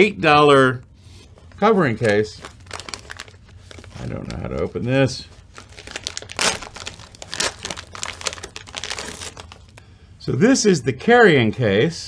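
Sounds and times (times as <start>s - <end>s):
packaging bag crinkling: 1.5s - 9.8s.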